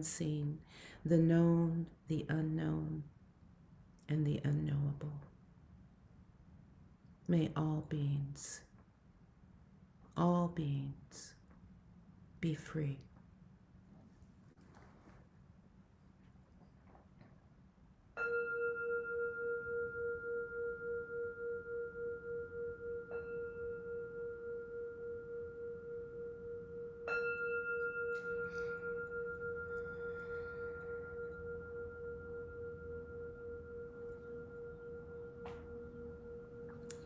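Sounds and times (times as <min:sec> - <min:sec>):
singing bowl ringing: 0:18.1 - 0:37.0.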